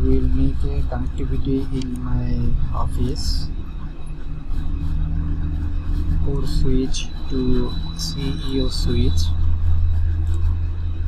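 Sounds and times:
low rumble with hum: 0:00.0 - 0:11.0.

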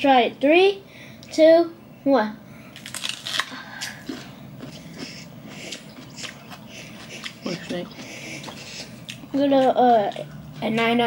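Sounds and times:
crunchy bite into peach: 0:02.7 - 0:07.4.

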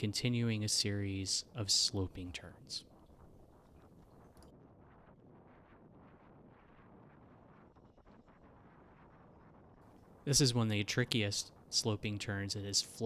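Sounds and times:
faint background hiss: 0:00.0 - 0:13.0.

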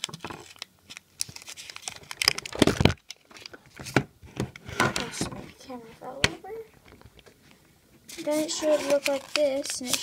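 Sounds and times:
paper crinkling and rustling: 0:00.0 - 0:04.0, 0:08.1 - 0:10.0.

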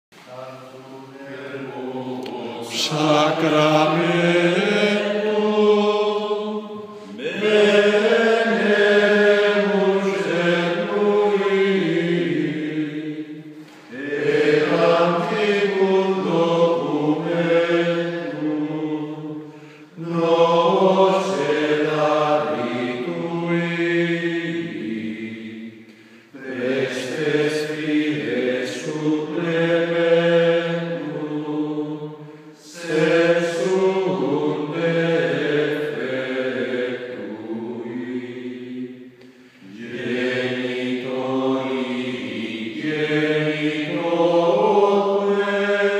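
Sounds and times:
low male voice chanting: 0:00.3 - 0:05.2.

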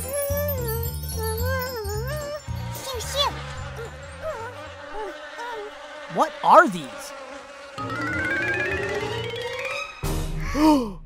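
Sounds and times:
insect-like buzzing drone: 0:00.0 - 0:10.1
whistly gliding tones: 0:07.8 - 0:10.0.

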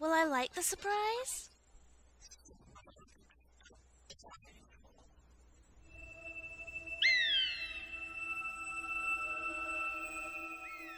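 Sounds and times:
orchestral sustained high tones: 0:05.8 - 0:10.9
sharp high falling screech: 0:05.9 - 0:10.9.

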